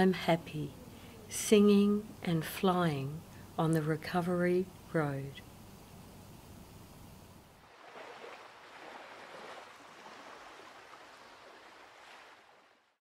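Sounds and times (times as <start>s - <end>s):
steady hiss: 0.8s - 7.7s
small waves washing on shore: 7.6s - 13.0s.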